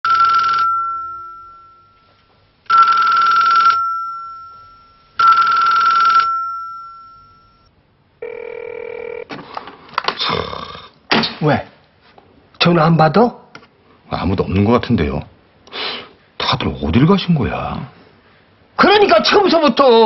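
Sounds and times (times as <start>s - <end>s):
telephone bell ringing: 0.1s - 9.3s.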